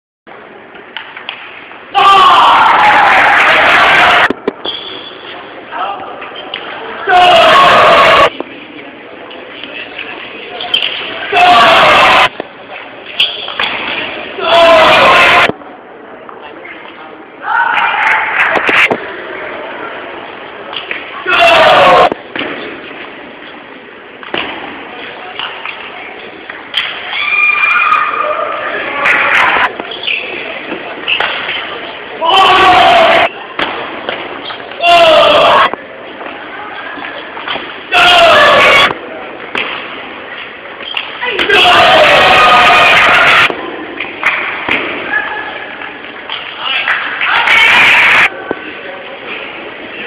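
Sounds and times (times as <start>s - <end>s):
crowd hubbub: 0.3s - 50.0s
crowd shouting and cheering: 1.0s - 8.4s, 10.7s - 12.5s, 13.5s - 15.6s, 17.4s - 20.0s, 20.7s - 22.5s, 26.6s - 39.8s, 40.5s - 48.6s.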